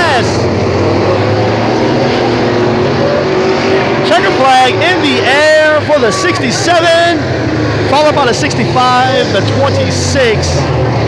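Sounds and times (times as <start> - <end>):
race car engines: 0.0 - 11.0.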